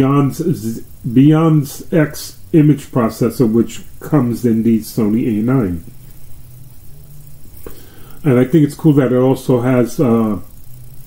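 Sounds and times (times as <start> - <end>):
man talking: 0.0 - 6.0, 8.2 - 10.5
low steady hum: 0.0 - 11.0.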